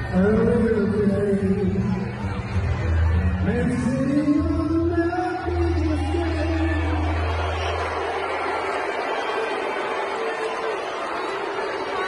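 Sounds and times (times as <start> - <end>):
man singing: 0.0 - 2.3, 3.4 - 7.4
crowd noise: 0.0 - 12.0.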